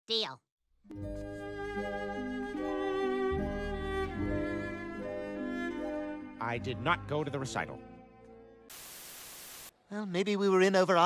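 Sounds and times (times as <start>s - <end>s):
string music: 0.9s - 8.5s
static-like hiss: 8.7s - 9.7s.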